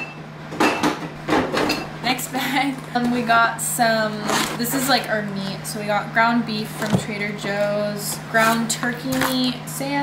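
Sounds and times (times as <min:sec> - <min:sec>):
groceries rustling and scraping: 0:02.6 - 0:05.6, 0:06.6 - 0:09.6.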